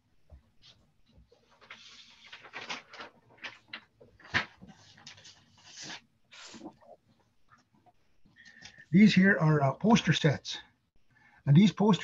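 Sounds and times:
paper rustling: 0:00.6 - 0:06.8.

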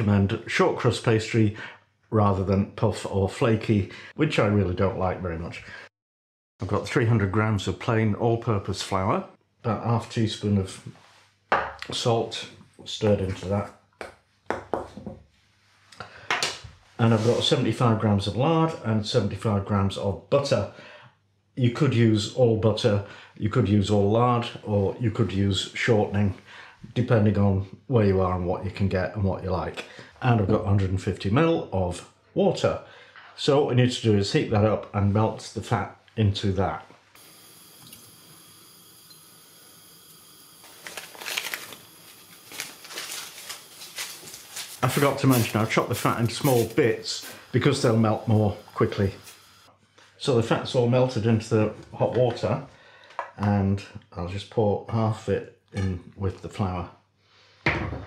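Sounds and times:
fat bubbling and crackling in water: 0:37.2 - 0:45.5.

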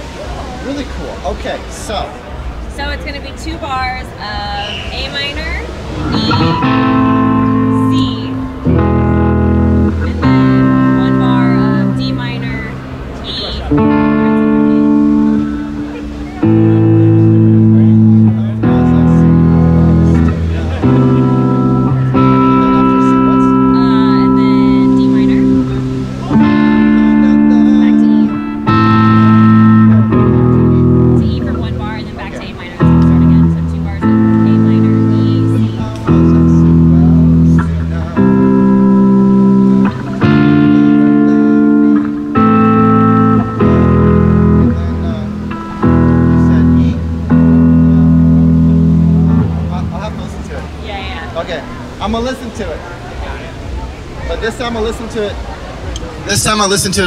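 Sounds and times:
guitar playing chords: 0:01.9 - 0:57.0.

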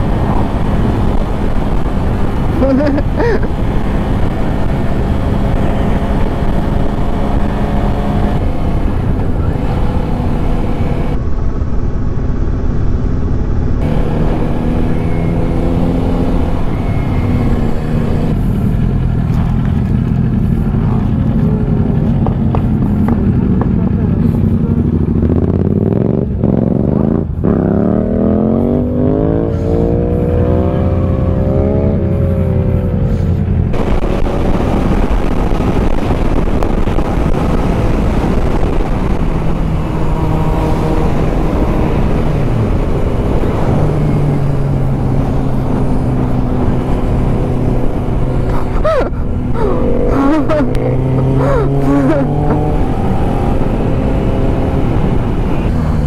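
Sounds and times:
wind rushing over microphone: 0:00.0 - 0:18.8, 0:19.7 - 0:56.0
motorcycle engine revving: 0:00.0 - 0:56.0.

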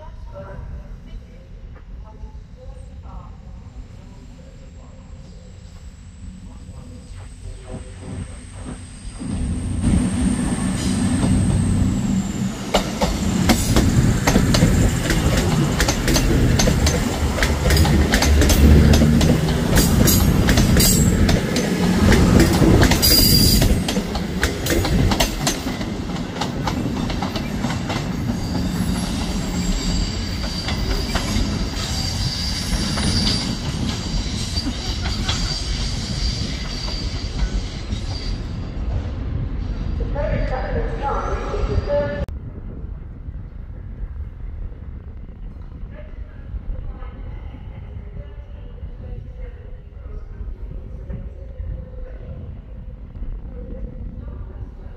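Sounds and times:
high wheel squeal: 0:07.5 - 0:13.7, 0:23.0 - 0:24.0, 0:28.2 - 0:38.7
diesel engines rumbling: 0:09.5 - 0:27.8
train wheels clicking over track: 0:09.8 - 0:39.0.

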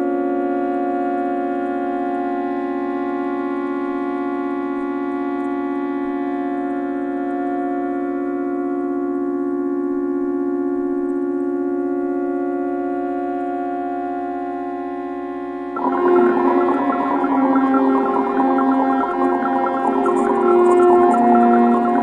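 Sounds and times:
sustained synthesizer chord: 0:00.0 - 0:22.0.

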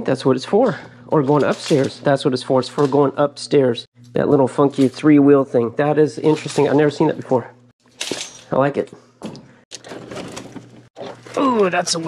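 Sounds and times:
equipment knocking and scraping: 0:09.2 - 0:11.4.

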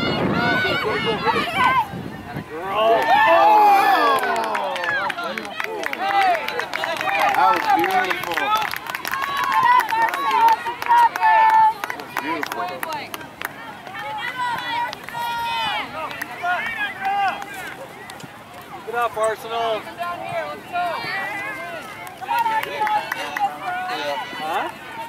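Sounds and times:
players and spectators shouting: 0:00.0 - 0:25.0.

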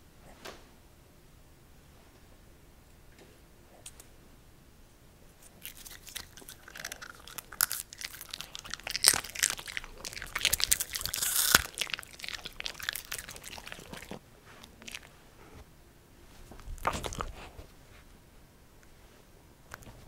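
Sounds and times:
dog crunching popcorn: 0:05.4 - 0:15.2, 0:16.6 - 0:17.6.

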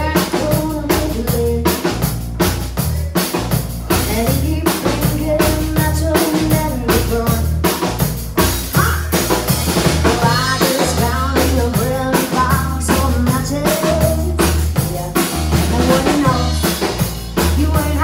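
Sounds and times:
drum kit beat: 0:00.0 - 0:18.0
live band playing: 0:00.0 - 0:18.0
low bass: 0:00.0 - 0:18.0.

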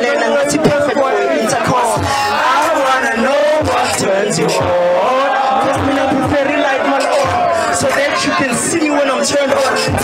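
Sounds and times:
hip-hop beat: 0:00.0 - 0:10.0
person rapping through a microphone: 0:00.0 - 0:10.0.

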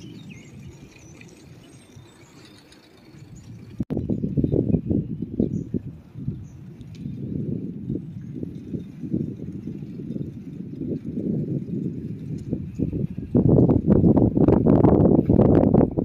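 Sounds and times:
bicycle rattling over path: 0:00.0 - 0:16.0
wind on microphone: 0:00.0 - 0:16.0.

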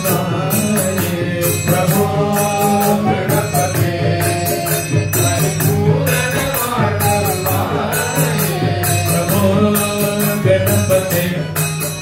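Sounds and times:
man chanting into a microphone: 0:00.0 - 0:11.6
steady percussion beat: 0:00.0 - 0:12.0.

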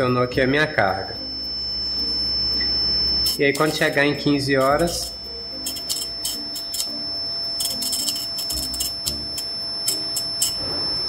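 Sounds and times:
multimeter continuity beep: 0:00.0 - 0:11.0
soft background music: 0:00.0 - 0:11.0.

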